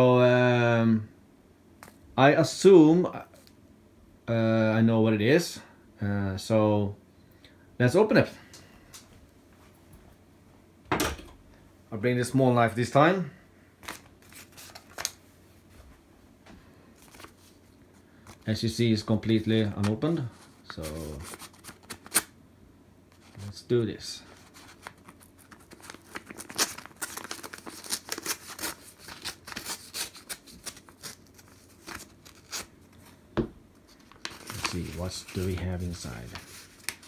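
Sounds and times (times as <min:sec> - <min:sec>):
knife slitting paper envelope: 0:24.4 - 0:32.7.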